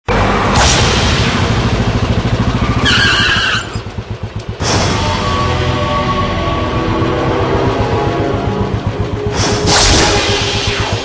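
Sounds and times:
engine throbbing: 0.1 - 11.0
tyre screech: 2.8 - 3.9.

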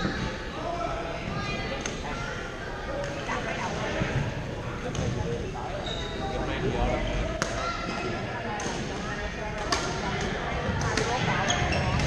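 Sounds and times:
background voices in echoing hall: 0.0 - 12.0.

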